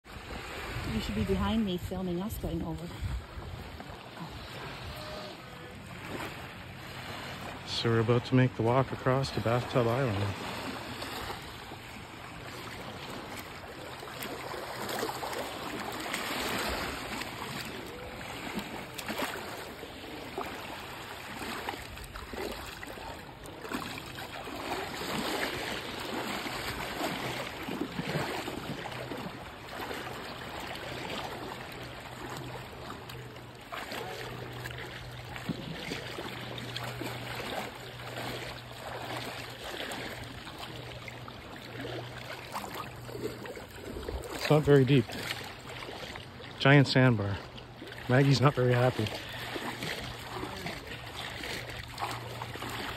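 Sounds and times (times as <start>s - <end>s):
small waves lapping: 0.0s - 52.9s
water splashing around wading legs: 0.0s - 52.9s.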